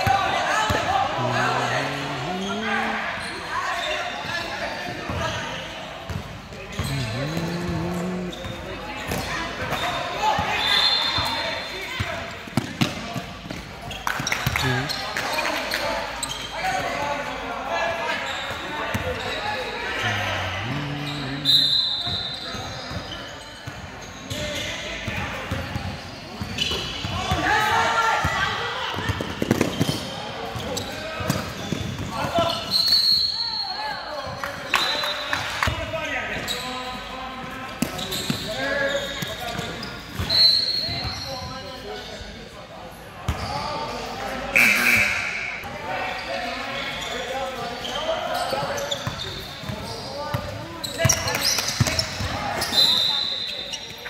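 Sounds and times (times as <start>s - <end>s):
sneaker squeaks: 0.6s - 17.0s, 18.0s - 27.5s, 29.0s - 35.3s, 36.4s - 37.1s, 37.8s - 42.3s, 44.6s - 54.0s
people calling out: 0.7s - 3.5s, 6.8s - 8.8s, 19.8s - 22.0s.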